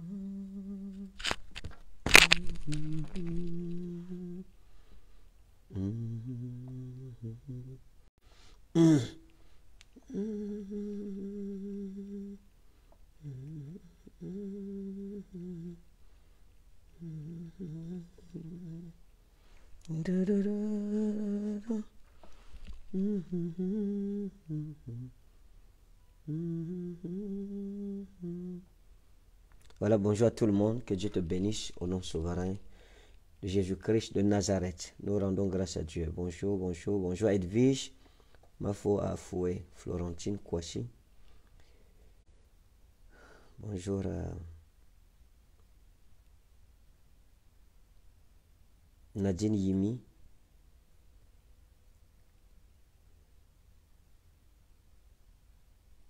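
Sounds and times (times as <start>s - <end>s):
man humming low notes: 0.0s - 1.2s, 2.2s - 4.6s, 5.7s - 8.0s, 8.7s - 9.3s, 9.9s - 12.5s, 13.2s - 15.9s, 16.9s - 19.1s, 19.8s - 22.0s, 22.8s - 25.2s, 26.2s - 28.8s.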